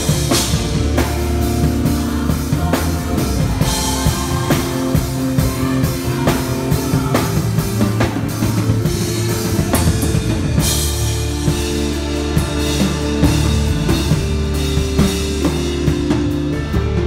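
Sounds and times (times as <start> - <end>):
band backing: 0.0 - 17.0
drum kit groove: 0.0 - 17.0.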